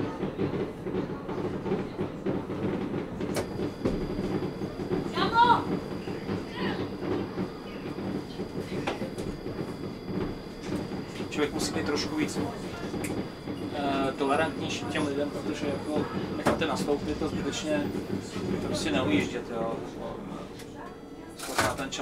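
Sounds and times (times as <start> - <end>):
tram rumbling on rails: 0.0 - 22.0.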